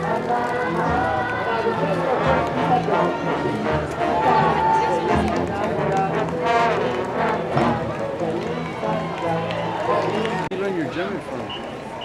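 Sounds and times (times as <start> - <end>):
people talking close by: 0.0 - 12.0
street crowd noise: 0.0 - 12.0.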